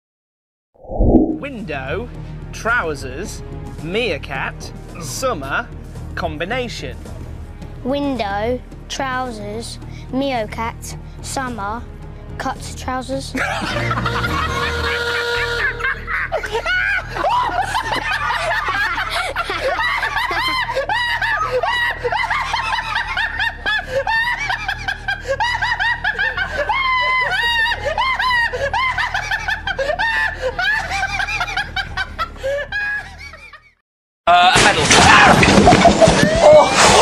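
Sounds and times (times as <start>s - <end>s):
man laughing uncontrollably: 13.4s - 33.7s, 35.5s - 37.0s.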